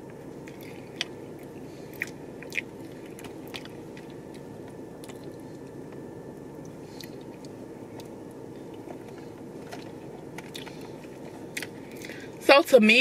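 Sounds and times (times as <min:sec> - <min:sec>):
steady low hum: 0:00.0 - 0:13.0
close-up chewing of cookie: 0:00.4 - 0:12.2.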